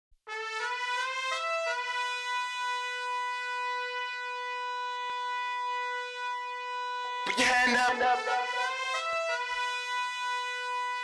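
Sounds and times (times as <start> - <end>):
sustained musical note: 7.3 - 9.2.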